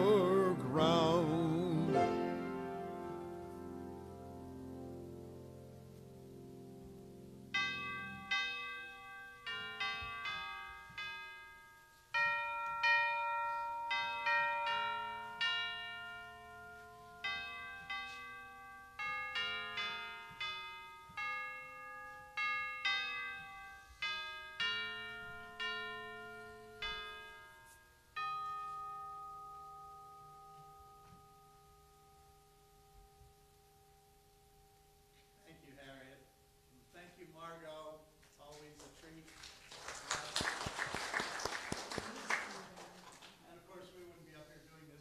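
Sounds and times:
chimes playing slow melody: 0:07.5 - 0:36.8.

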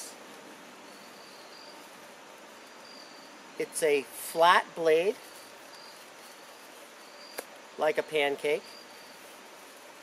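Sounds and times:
high-pitched insect calls: 0:00.0 - 0:10.0.

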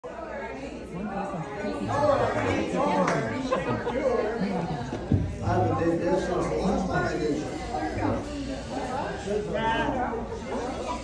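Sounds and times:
chatter of people in a hall: 0:00.0 - 0:11.0.

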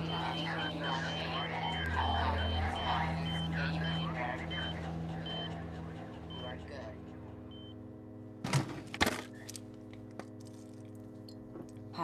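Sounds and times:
overlapping voices: 0:00.0 - 0:07.2
low steady hum: 0:00.0 - 0:12.0.

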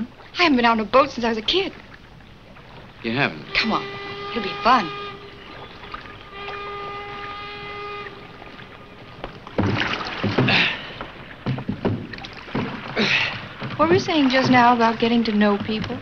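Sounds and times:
oars splashing in water: 0:00.0 - 0:16.0
steady pitched tone: 0:02.9 - 0:10.4
oar knocks: 0:03.4 - 0:16.0.

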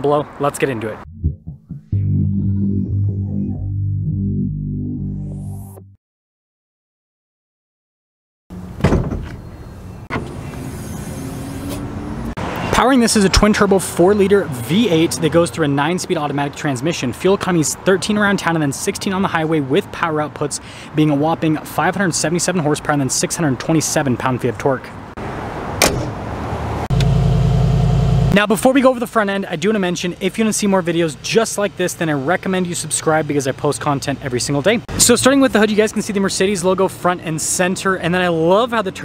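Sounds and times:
steady vehicle noise: 0:08.5 - 0:39.0.

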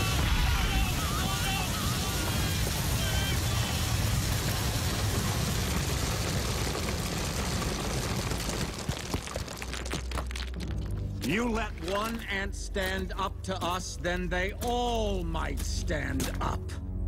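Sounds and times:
seeds pattering: 0:00.9 - 0:11.0.

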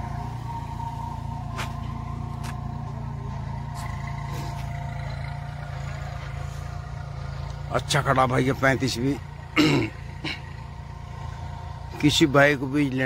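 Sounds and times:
tractor diesel engine under load: 0:00.0 - 0:13.0.

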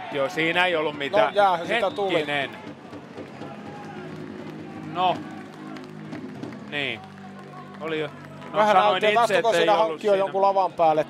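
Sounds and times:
murmur of crowd and players: 0:00.0 - 0:11.0.

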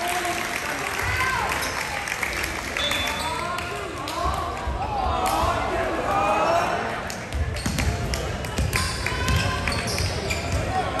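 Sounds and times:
volleyball bouncing on wooden floor: 0:07.3 - 0:10.7.

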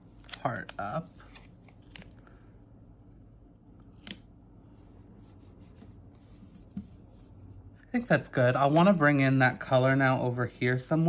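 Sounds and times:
paper rustling: 0:00.1 - 0:02.2.

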